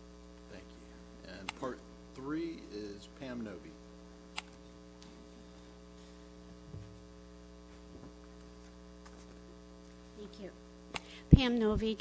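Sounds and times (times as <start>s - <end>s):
faint electrical mains hum: 0.0s - 12.0s.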